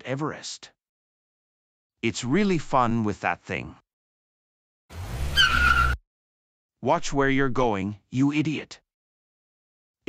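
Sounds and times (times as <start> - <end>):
tyre screech: 5.0 - 6.0.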